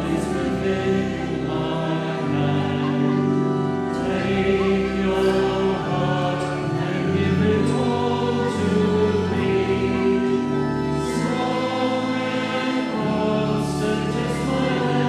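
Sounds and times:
choir singing a hymn: 0.0s - 15.0s.

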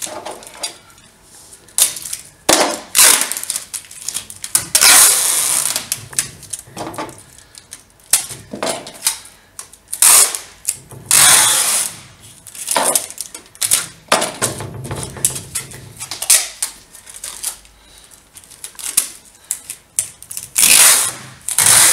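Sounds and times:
tape crackling and clicking: 0.0s - 11.2s, 11.8s - 21.9s
adhesive tape pulled off roll: 2.9s - 6.6s, 11.1s - 12.7s, 20.3s - 21.9s.

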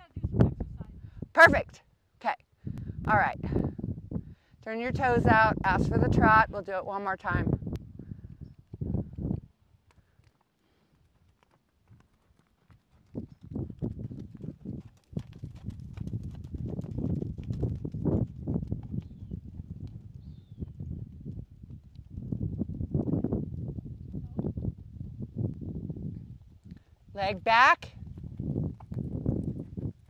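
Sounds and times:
horse hoofbeats on dirt: 8.3s - 24.9s, 28.0s - 30.0s.

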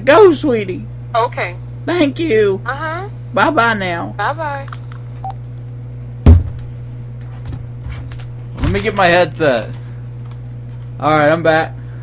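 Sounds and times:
steady low hum: 0.0s - 12.0s
loud short thump: 6.2s - 6.7s.

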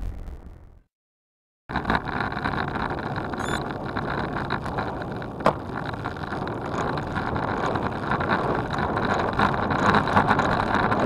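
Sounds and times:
bicycle tyre and road rumble: 1.7s - 11.0s.

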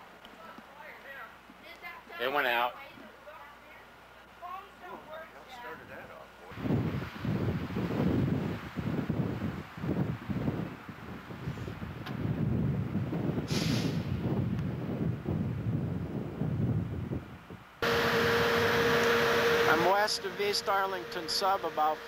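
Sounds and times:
wind buffeting microphone: 6.5s - 18.8s
steady hum: 17.8s - 22.0s.

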